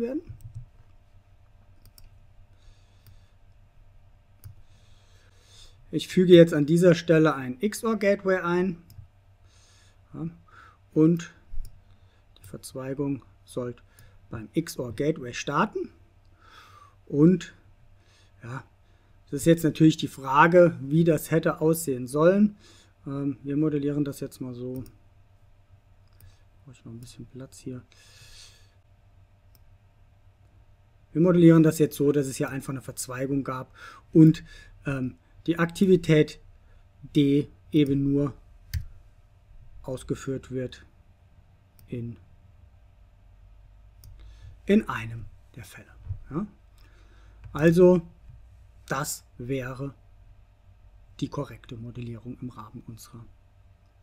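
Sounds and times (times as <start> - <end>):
computer mouse click: 0.3 - 0.8, 1.8 - 2.2
computer mouse clicks: 0.3 - 0.9, 1.8 - 2.2, 3.0 - 3.6, 4.4 - 4.6.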